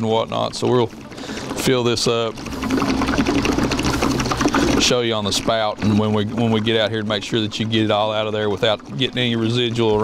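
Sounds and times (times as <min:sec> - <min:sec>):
fluid pouring and gurgling: 0:00.0 - 0:10.0.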